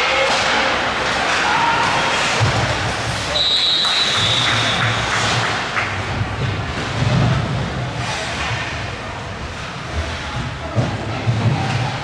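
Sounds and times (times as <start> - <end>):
spectators' voices: 0.0 - 12.0.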